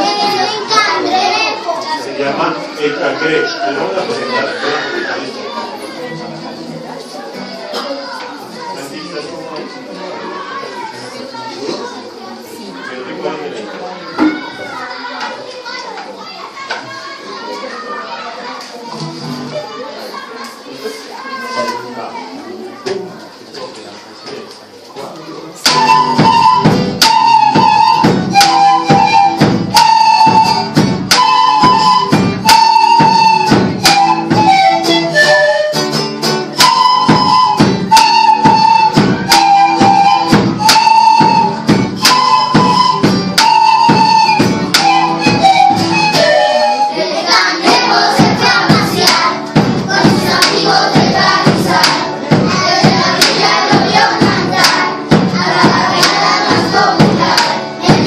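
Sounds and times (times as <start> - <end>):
children's voices: 0.0 - 58.0
small flutes playing melody: 25.6 - 49.4
large drum beat: 25.7 - 35.2, 36.4 - 46.1, 47.6 - 58.0.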